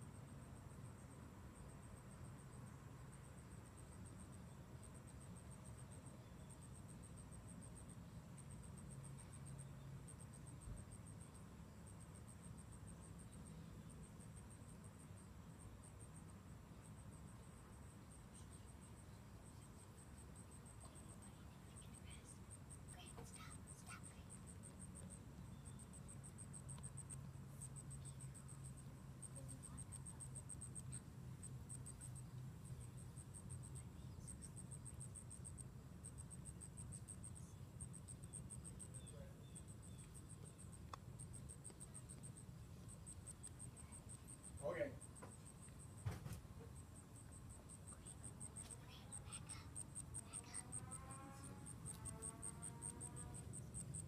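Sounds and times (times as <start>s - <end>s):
insect chirping: 0.0s - 54.0s.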